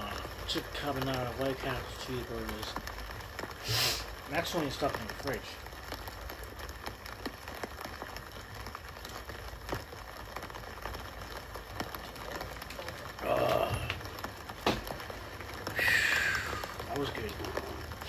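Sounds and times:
person swallowing: 13.2s - 14.0s.

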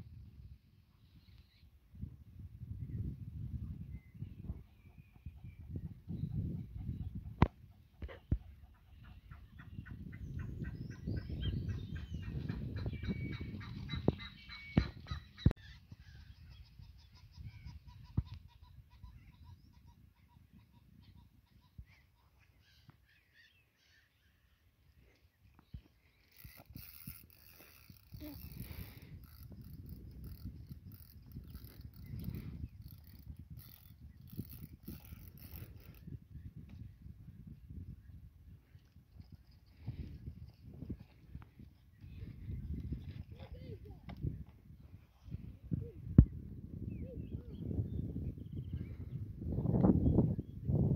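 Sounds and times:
wind buffeting microphone: 0.0s - 23.0s, 25.6s - 50.9s.

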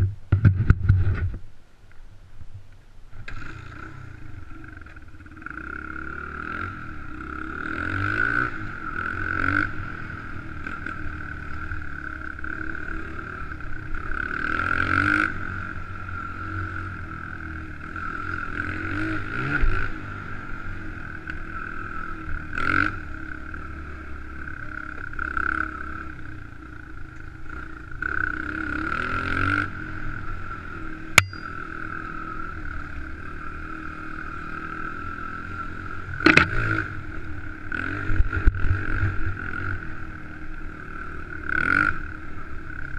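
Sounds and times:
dirt bike engine revving: 3.3s - 42.9s.

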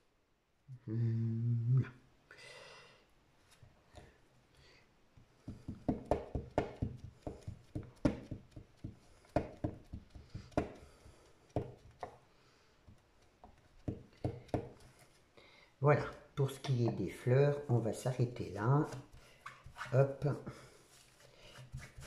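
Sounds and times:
stamp block tapping on paper: 5.5s - 12.2s, 12.9s - 14.8s.

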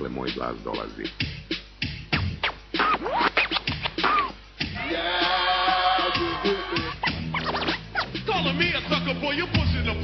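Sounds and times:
hip hop track: 0.0s - 10.0s
turntable scratching: 0.2s - 10.0s.

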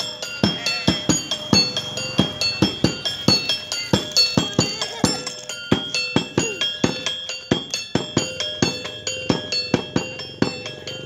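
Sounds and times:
hand-beaten drum: 0.0s - 11.0s
metal percussion clinking: 0.0s - 11.0s.

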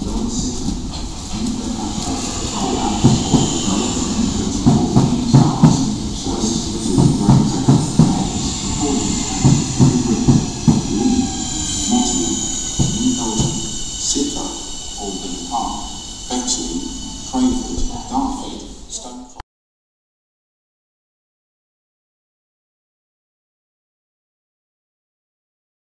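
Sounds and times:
train wheels clattering over joints: 0.0s - 18.4s
high train whine: 0.0s - 19.4s.

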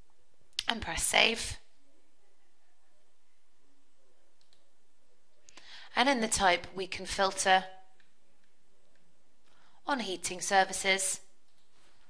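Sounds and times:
computer mouse click: 4.4s - 4.7s.

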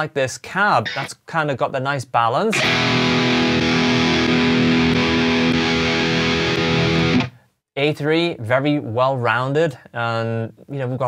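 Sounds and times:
distorted electric guitar chord: 2.6s - 7.3s.

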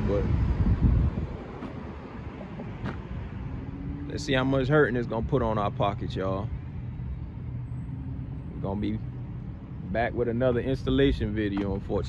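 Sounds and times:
wind rumbling on microphone: 0.0s - 5.7s
traffic hum: 0.0s - 12.0s.

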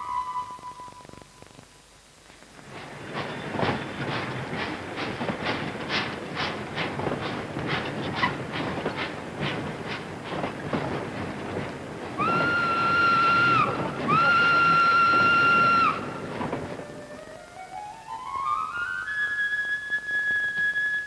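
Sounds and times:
steam whistle: 0.0s - 1.2s, 12.2s - 16.3s
steam locomotive chuffing: 2.5s - 17.6s.

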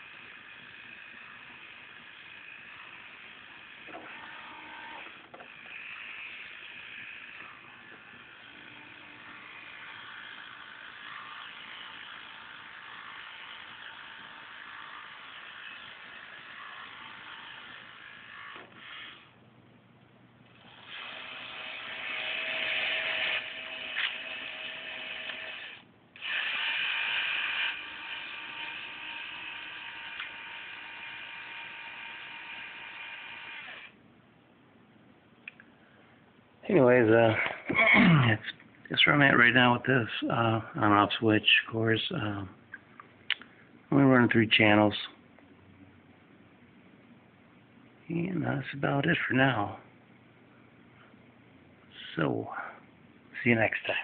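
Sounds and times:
small electric motors whirring: 0.0s - 19.3s, 20.5s - 34.0s.

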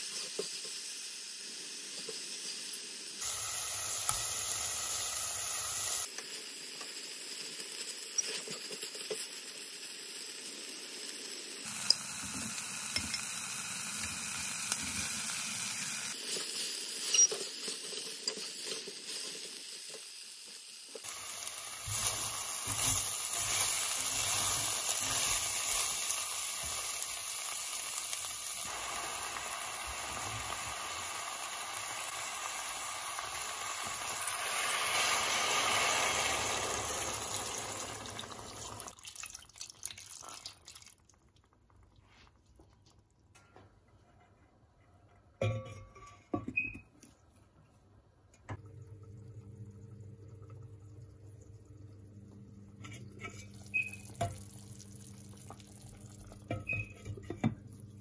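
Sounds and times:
food sizzling in a pot: 0.0s - 41.2s, 52.8s - 58.0s.

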